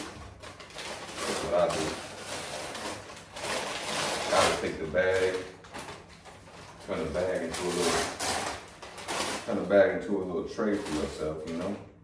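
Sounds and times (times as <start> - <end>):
paper bag rustling: 0.0 - 11.8.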